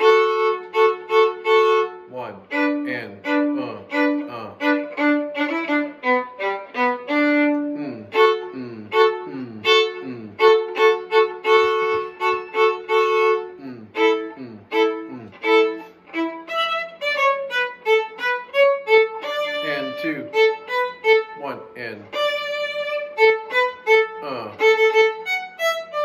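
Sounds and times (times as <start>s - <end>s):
solo violin fiddle tune: 0.0s - 26.0s.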